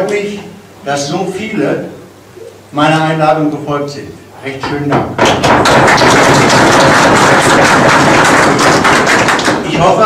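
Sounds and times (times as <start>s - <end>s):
audience applauding: 5.3s - 10.0s.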